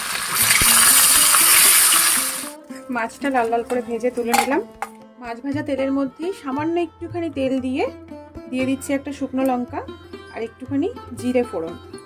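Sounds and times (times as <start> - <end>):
fish sizzling in hot oil: 0.0 - 2.6.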